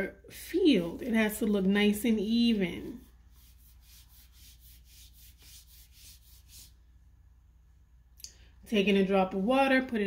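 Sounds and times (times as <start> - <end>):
brush strokes on paper: 0.7 - 6.8.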